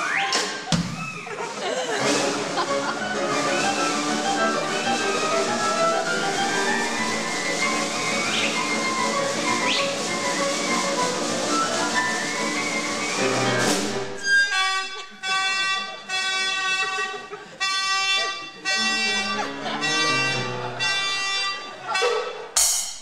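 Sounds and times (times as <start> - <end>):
percussion and piano ensemble: 0.0 - 15.0, 18.7 - 23.0
rising whistle-like glide: 3.4 - 14.3.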